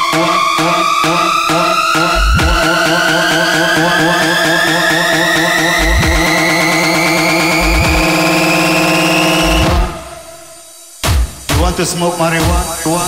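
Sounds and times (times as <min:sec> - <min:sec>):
synthesizer tone climbing in pitch: 0:00.0 - 0:10.8
sustained synth chords: 0:00.0 - 0:11.0
deep bass hits: 0:02.0 - 0:03.0, 0:05.5 - 0:08.3.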